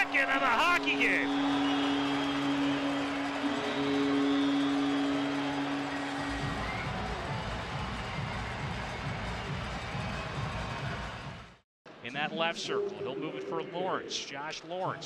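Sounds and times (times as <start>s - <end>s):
arena goal horn: 0.0s - 7.3s
arena music with low beat: 0.0s - 11.2s
crowd cheering: 0.0s - 11.6s.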